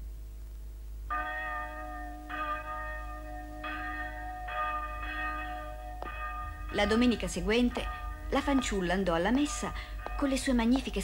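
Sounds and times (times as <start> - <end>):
church bell tolling: 1.1 - 11.0.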